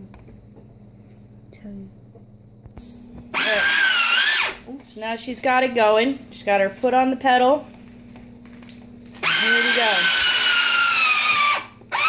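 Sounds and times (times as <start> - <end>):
small electric motor whine: 3.4 - 4.6, 9.2 - 12.0.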